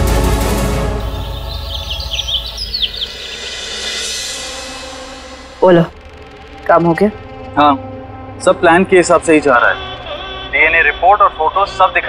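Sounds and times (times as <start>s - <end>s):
background music: 0.0s - 12.0s
birds chirping: 0.9s - 5.2s, 9.3s - 12.0s.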